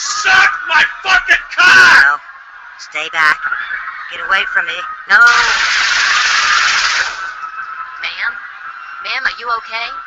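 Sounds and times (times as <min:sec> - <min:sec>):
automatic gunfire sound effect: 0:05.3 - 0:07.4.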